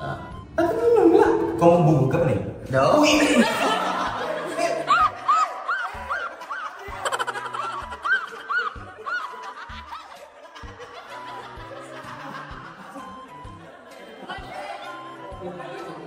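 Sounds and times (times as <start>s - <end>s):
background music with low beat: 0.0s - 16.0s
high quick laughter: 4.6s - 13.1s.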